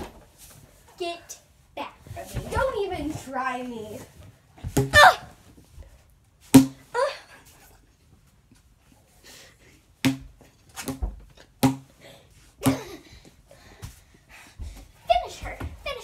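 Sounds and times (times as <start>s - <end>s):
cardboard tube knocking: 10.0s - 11.9s.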